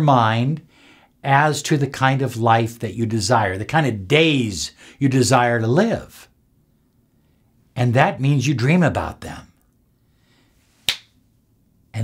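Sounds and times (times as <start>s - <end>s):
finger snap: 10.8s - 11.2s.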